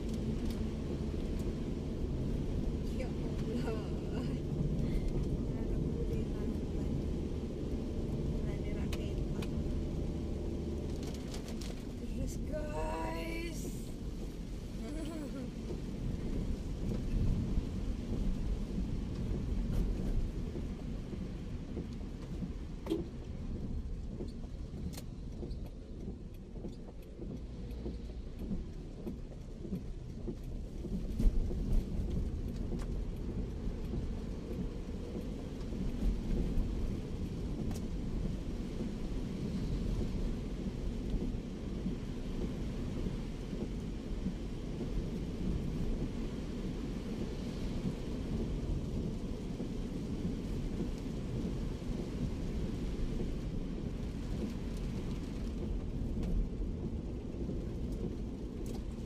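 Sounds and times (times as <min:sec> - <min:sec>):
heavy rain on car roof: 0:00.0 - 0:59.0
road and engine rumble: 0:00.0 - 0:59.0.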